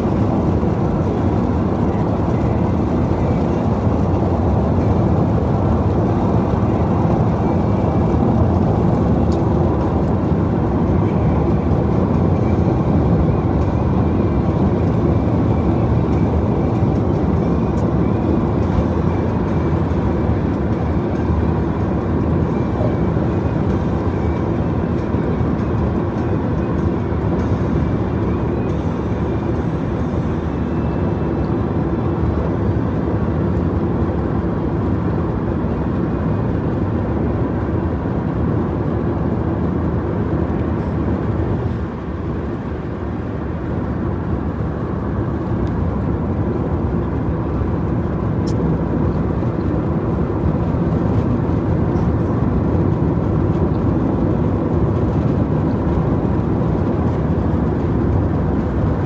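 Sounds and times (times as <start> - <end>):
car driving at speed: 0.0 - 59.0.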